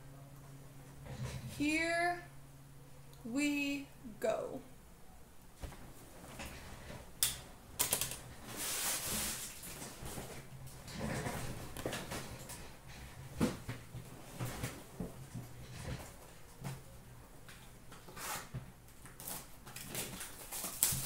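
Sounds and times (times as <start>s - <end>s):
cardboard rustling and sliding: 8.4s - 12.2s.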